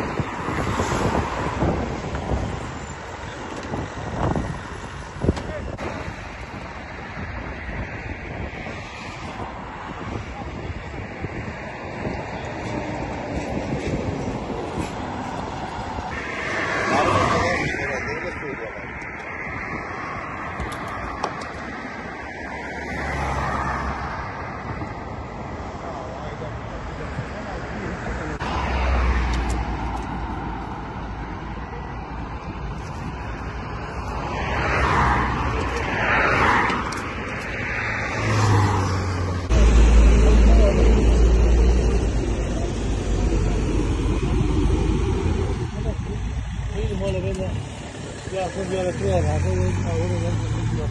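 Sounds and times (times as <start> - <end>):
vehicles passing: 0.0 - 50.9.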